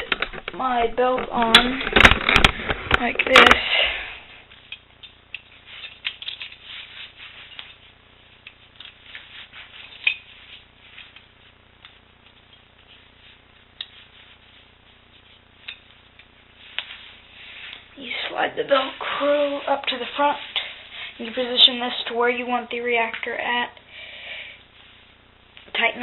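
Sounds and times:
fabric rustling: 5.4 - 22.0.

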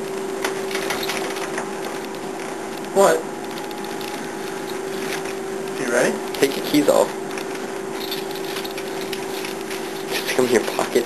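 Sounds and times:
steady hum: 0.0 - 11.0.

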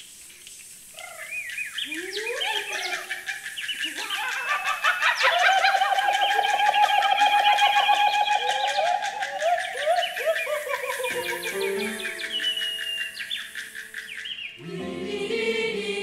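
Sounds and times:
choir imitating animal calls: 2.0 - 16.0
fast run of clicks: 5.9 - 11.2.

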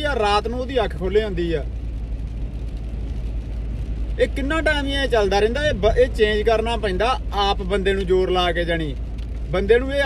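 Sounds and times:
engine and road drone: 0.0 - 10.0.

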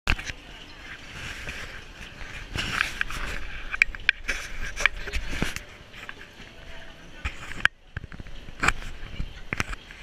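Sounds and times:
murmur of voices: 0.2 - 10.0
camera handling rubbing and knocks: 2.4 - 6.2.

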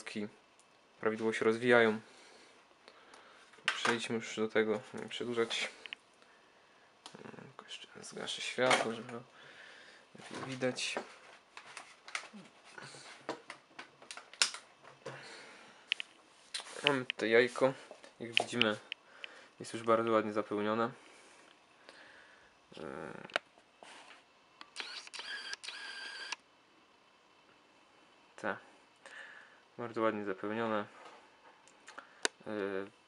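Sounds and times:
lens autofocus motor whirring: 24.7 - 26.4.

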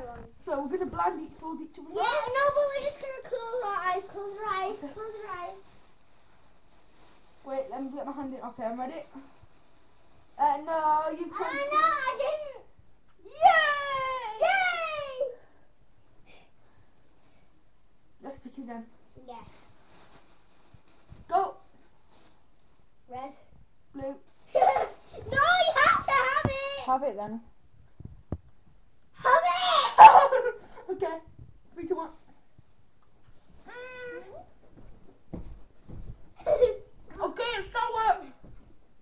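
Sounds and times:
child speaking: 0.0 - 5.6, 10.4 - 12.7, 19.2 - 19.5, 24.6 - 26.9, 29.2 - 30.1, 33.7 - 34.5, 36.4 - 38.4
plastic bag rustling: 0.0 - 12.5, 16.6 - 23.0, 24.2 - 26.7, 31.8 - 38.5.

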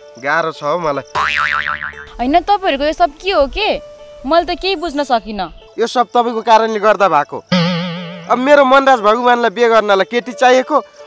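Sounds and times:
comic boing sound effect: 1.2 - 2.2, 7.5 - 9.0.

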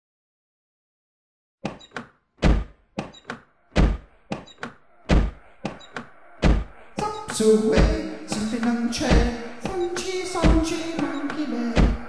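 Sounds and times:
drum beat: 5.1 - 5.5, 6.4 - 12.0.

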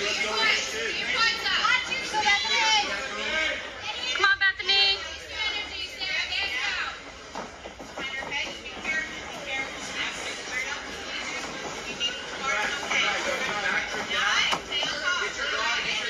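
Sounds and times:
people shouting and talking: 0.0 - 16.0.

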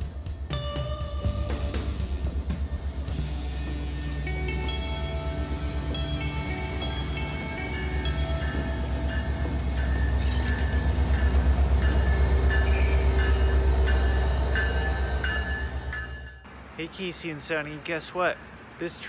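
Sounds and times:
background music: 0.0 - 16.4
diesel train rumbling past: 0.0 - 18.9.

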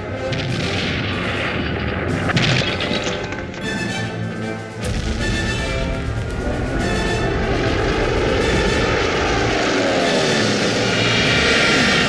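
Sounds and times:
film trailer music: 0.0 - 12.0
booming explosions: 0.1 - 3.7, 4.8 - 12.0.

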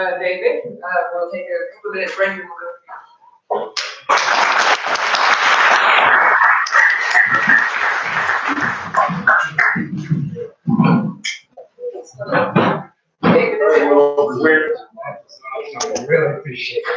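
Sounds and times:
audience applauding: 3.8 - 10.0
voices: 6.3 - 16.9.

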